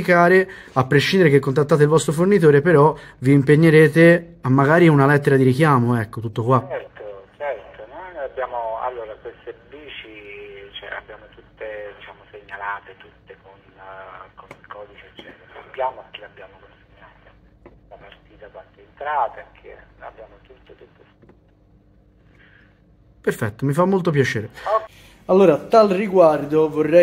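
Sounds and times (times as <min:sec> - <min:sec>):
person talking over telephone: 0:06.4 - 0:21.4.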